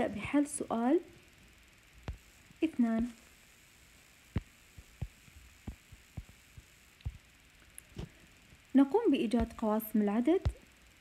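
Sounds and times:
faint room hiss: 0:00.0 - 0:11.0
soft low thumps: 0:02.0 - 0:03.2, 0:04.3 - 0:07.3, 0:09.3 - 0:09.8.

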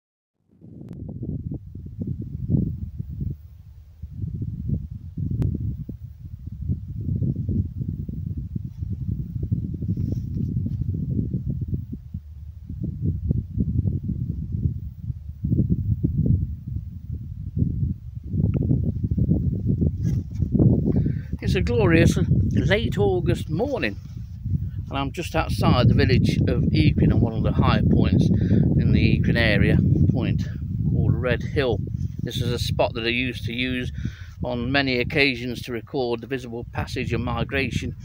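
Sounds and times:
wind buffeting microphone: 0:00.5 - 0:38.0.

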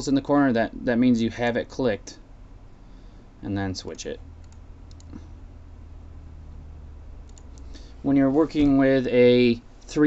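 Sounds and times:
low steady hum: 0:00.0 - 0:10.0
computer mouse clicking: 0:04.4 - 0:05.3, 0:07.2 - 0:07.8.

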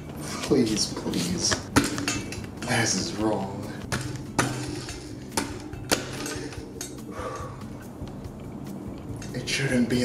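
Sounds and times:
metallic clicks of wheel axle: 0:04.0 - 0:09.4.

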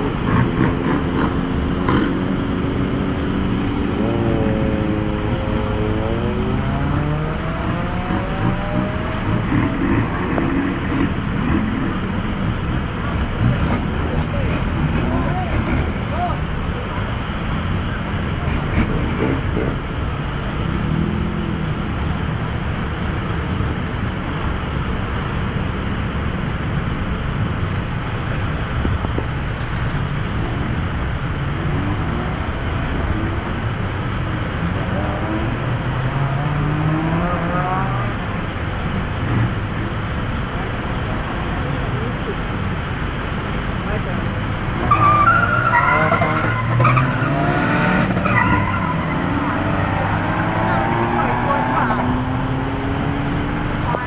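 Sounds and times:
car engines in traffic: 0:00.0 - 0:54.0
engines revving: 0:00.0 - 0:54.0.

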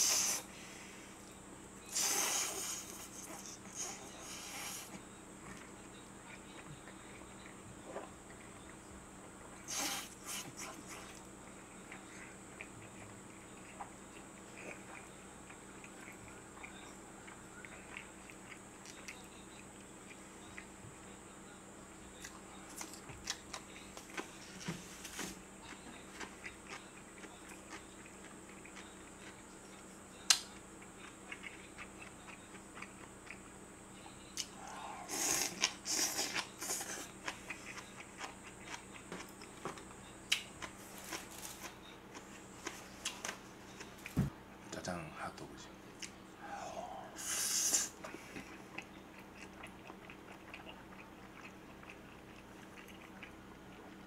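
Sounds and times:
faint electrical hum: 0:00.0 - 0:54.0
chewing and biting food: 0:01.9 - 0:21.2, 0:22.0 - 0:24.7, 0:25.4 - 0:33.6, 0:34.3 - 0:44.2, 0:48.0 - 0:54.0.

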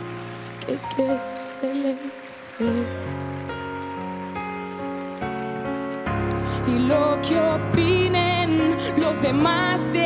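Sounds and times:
grand piano chords: 0:00.0 - 0:10.0.

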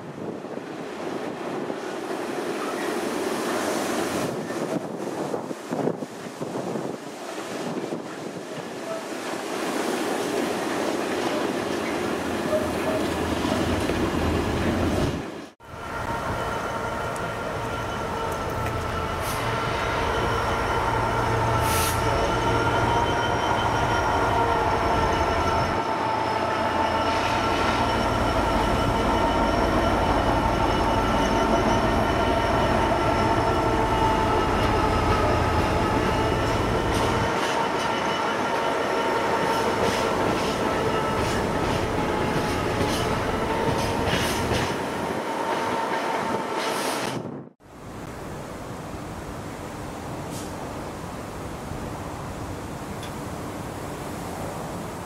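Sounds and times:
diesel locomotive engine drone: 0:09.8 - 0:55.0
rail joint clicks: 0:17.0 - 0:19.5, 0:39.4 - 0:44.9, 0:52.9 - 0:53.2.

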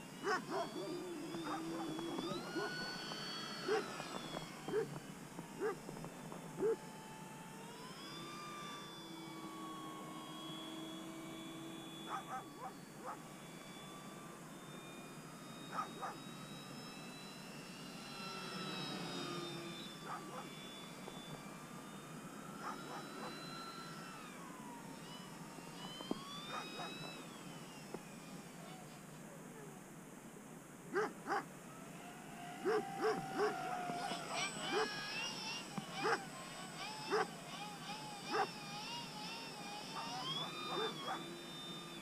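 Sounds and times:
model plane motor whine: 0:00.0 - 0:42.0.

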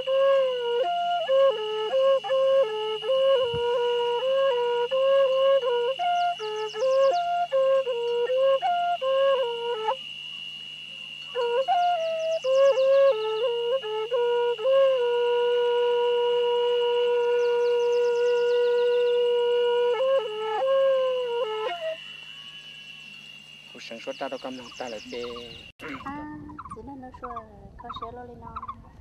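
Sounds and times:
bamboo free-reed flute melody: 0:00.0 - 0:26.7.

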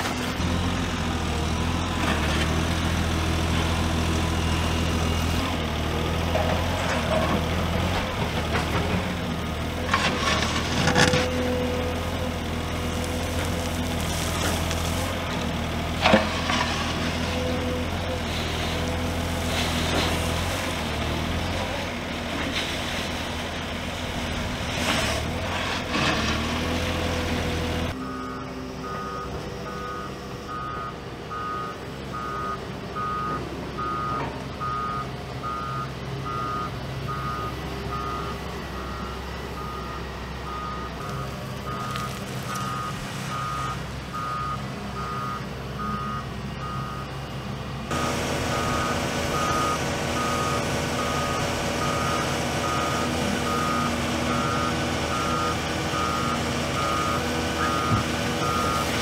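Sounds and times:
diesel engines running: 0:00.0 - 0:59.0
reversing alarm beeping: 0:27.9 - 0:47.2, 0:47.9 - 0:59.0.

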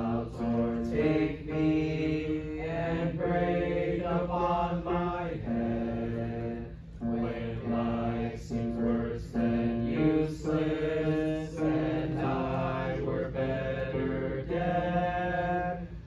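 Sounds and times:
person singing hymn unaccompanied: 0:00.0 - 0:16.0.

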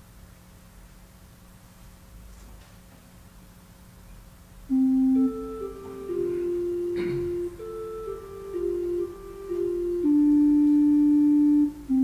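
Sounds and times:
organ sustained notes: 0:04.7 - 0:12.0.

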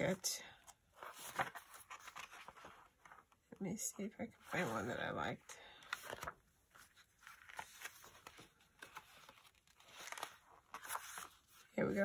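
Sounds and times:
paper pages rustling: 0:00.6 - 0:03.4, 0:05.7 - 0:12.0.

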